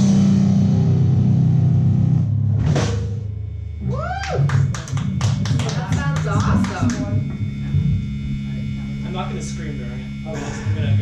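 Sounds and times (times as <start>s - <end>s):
instrument amplifier hum: 0.0s - 11.0s.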